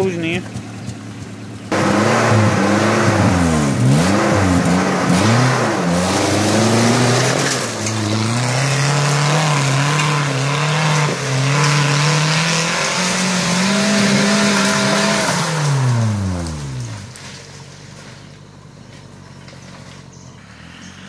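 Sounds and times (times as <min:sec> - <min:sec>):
jeep engine revving: 0:00.0 - 0:21.0.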